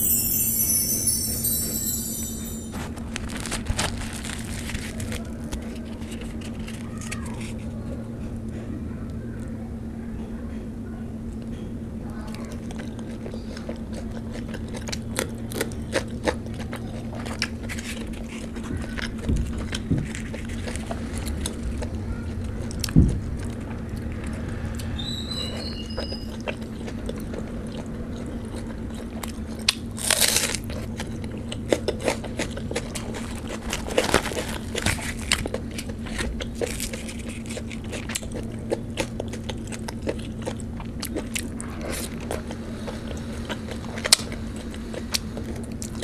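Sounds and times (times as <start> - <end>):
bread tearing: 3.3 - 7.6, 30.0 - 30.7
chewing with wet mouth clicks: 12.3 - 24.4, 25.9 - 46.0.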